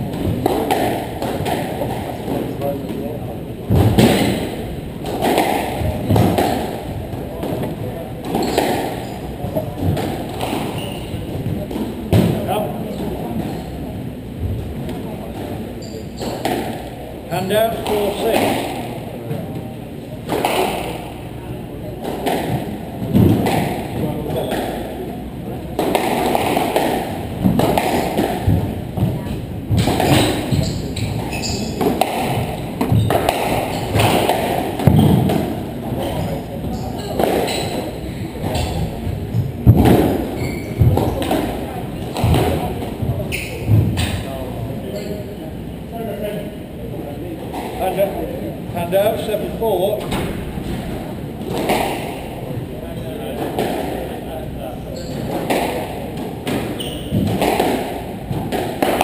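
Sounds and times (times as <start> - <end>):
squash ball thuds: 0.0 - 13.6, 22.0 - 25.1, 25.7 - 44.3, 50.0 - 52.6, 55.2 - 59.0
murmur of voices: 0.0 - 59.0.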